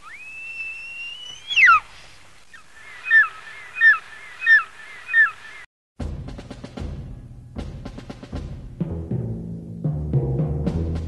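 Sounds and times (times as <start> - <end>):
eagle screech: 0.0 - 4.6.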